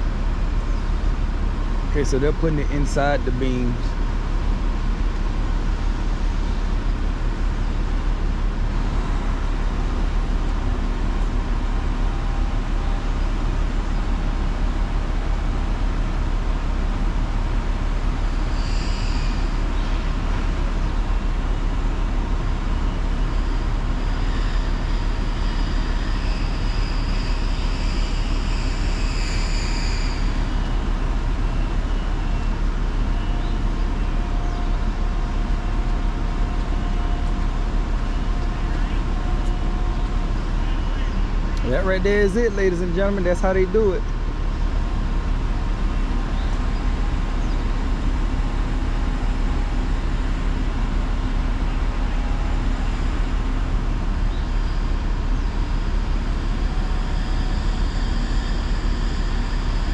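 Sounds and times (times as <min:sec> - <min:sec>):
diesel engine rumble: 0:00.0 - 0:59.9
faint high whine: 0:00.0 - 0:59.9.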